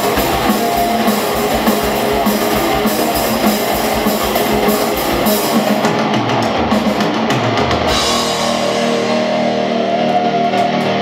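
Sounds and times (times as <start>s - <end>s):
drum kit hits: 0.0s - 11.0s
heavy metal band playing live: 0.0s - 11.0s.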